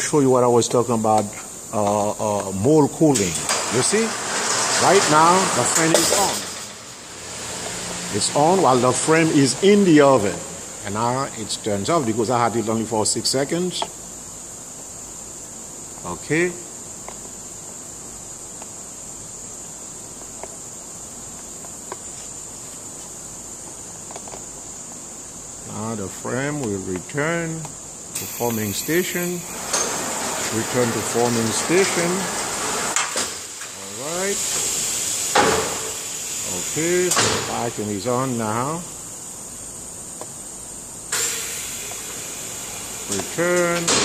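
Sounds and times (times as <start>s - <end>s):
low hiss: 0.0s - 44.0s
rush of cooling air: 0.0s - 44.0s
machine high-pitched whine: 1.1s - 13.7s, 25.6s - 39.4s.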